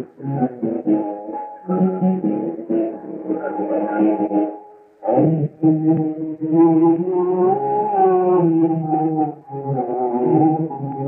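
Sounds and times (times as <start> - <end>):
man singing long held note: 0.0 - 11.0.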